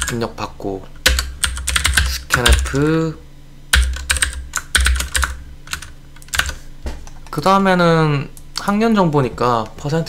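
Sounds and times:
keyboard typing clicks: 1.0 - 2.9, 3.8 - 7.2.

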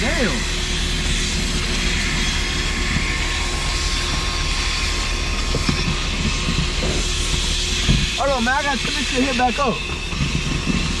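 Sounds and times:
faint steady whine: 0.0 - 11.0
vacuum hose rushing hiss: 0.0 - 11.0.

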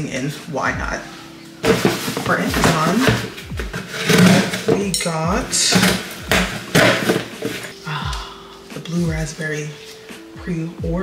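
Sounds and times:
packaging rustling and crinkling: 1.5 - 4.9, 5.5 - 7.8.

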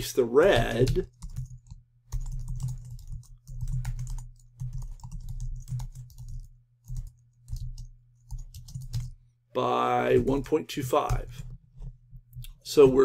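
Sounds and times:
typing on a keyboard: 0.5 - 9.2.

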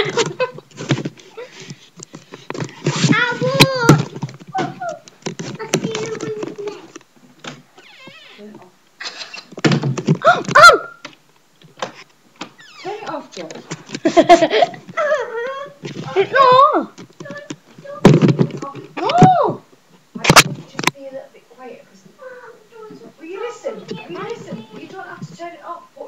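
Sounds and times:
knocks and bumps: 2.2 - 7.6, 9.6 - 10.6, 15.9 - 19.4
children crying and squealing: 15.0 - 16.9.

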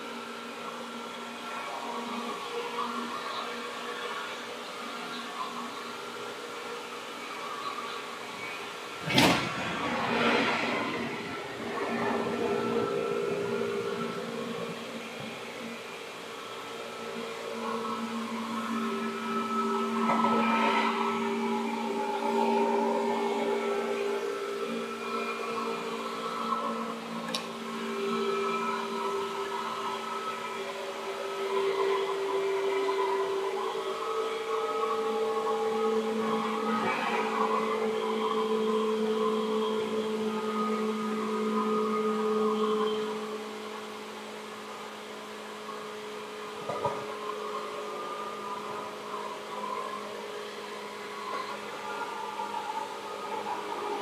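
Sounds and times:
electric train motor whine: 0.0 - 54.0
train rumble: 8.9 - 15.4.

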